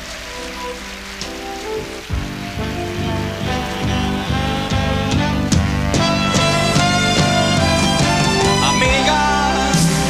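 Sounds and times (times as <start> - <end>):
audience applauding: 0.0 - 10.0
band soft held chords: 0.0 - 10.0
bass and drums beat: 1.1 - 10.0.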